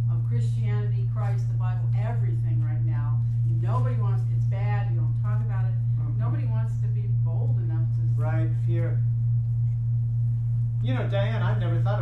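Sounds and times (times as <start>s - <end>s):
low electrical hum: 0.0s - 12.0s
man speaking: 10.8s - 12.0s.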